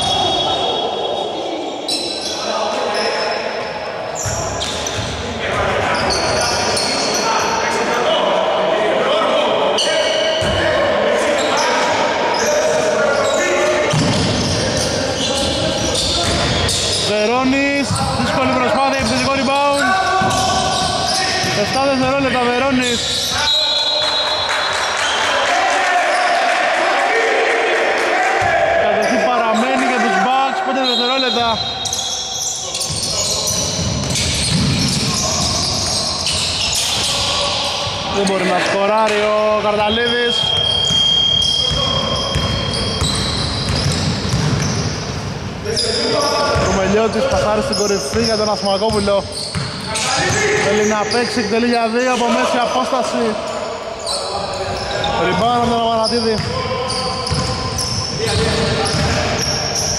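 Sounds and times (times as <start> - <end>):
players calling out: 0.0 - 59.9
basketball bouncing on hardwood: 42.3 - 44.7.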